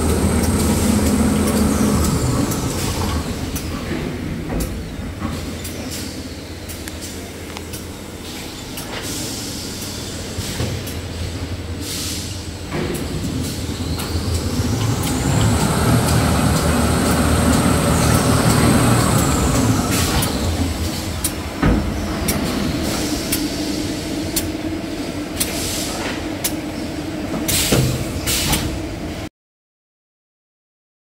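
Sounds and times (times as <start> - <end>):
high machine whine: 0.0 - 3.8, 12.4 - 25.4
machine humming: 0.0 - 3.8, 12.5 - 25.5.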